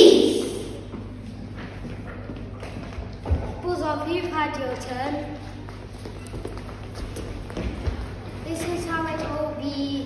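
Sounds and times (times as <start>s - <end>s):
child's footsteps on hall floor: 0.7s - 10.0s.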